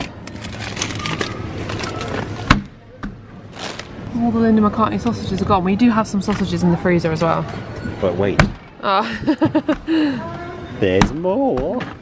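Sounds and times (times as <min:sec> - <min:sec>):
plastic bags rustling: 0:00.0 - 0:02.4, 0:03.5 - 0:04.1.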